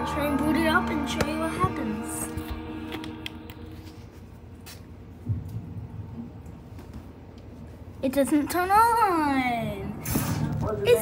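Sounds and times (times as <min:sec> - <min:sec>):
faint background music: 0:00.0 - 0:06.2, 0:08.0 - 0:11.0.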